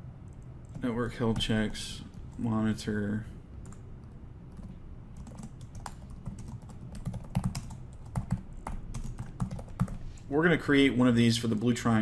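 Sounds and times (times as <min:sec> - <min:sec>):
computer keyboard typing: 0:04.5 - 0:10.0.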